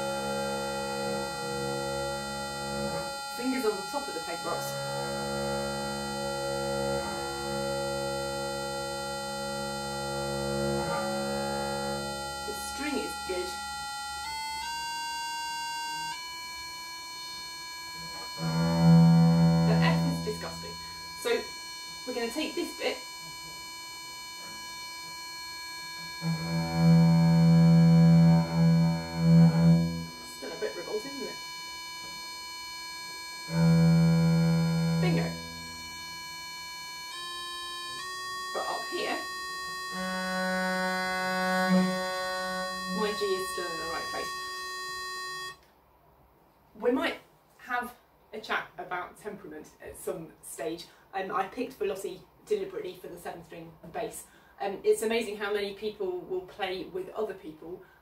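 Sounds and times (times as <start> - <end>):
bass viol bowed low notes: 0.0 - 45.6
electronic reference tone: 0.0 - 45.6.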